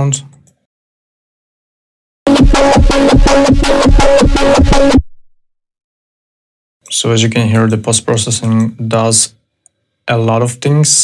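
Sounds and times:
distorted synth bass pulsing: 2.3 - 5.1.

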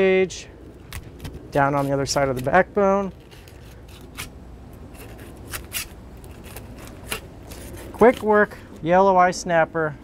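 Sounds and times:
knife scraping over fish bones: 3.1 - 8.4.

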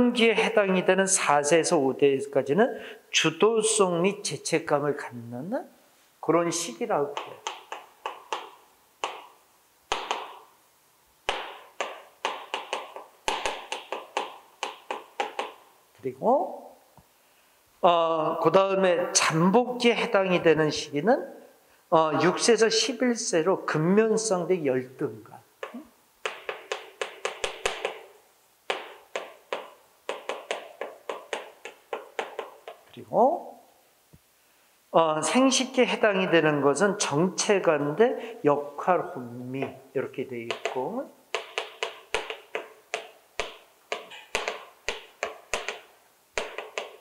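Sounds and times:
chalk tapping on chalkboard: 7.1 - 10.5, 11.2 - 15.7, 25.6 - 32.9, 40.5 - 47.0.

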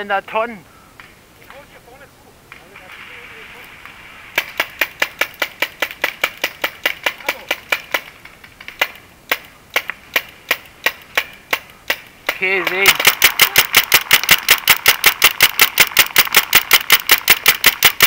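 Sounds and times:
paintball marker firing: 3.8 - 18.0.

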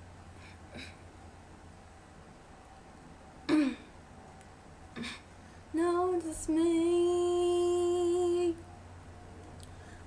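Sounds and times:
girl clearing her throat: 3.5 - 3.9.

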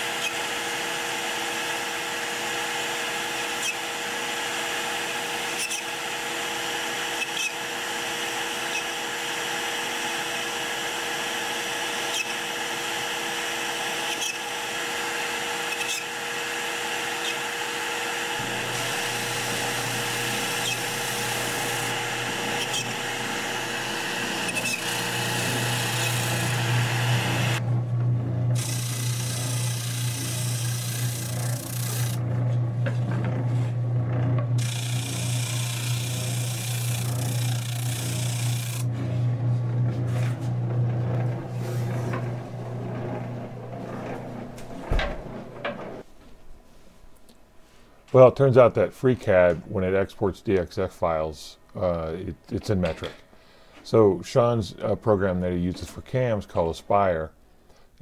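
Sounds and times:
router spindle whine: 0.0 - 27.8, 28.5 - 32.3, 34.0 - 44.6.

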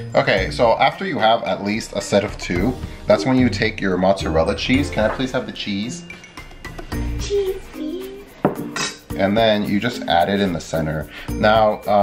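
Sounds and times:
kitchen handling sounds: 4.8 - 5.6, 8.4 - 9.9.

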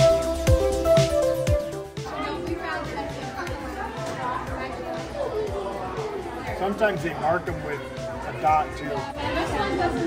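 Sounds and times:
music with low beat: 0.0 - 2.2
indistinct voices chatting: 1.7 - 10.0.

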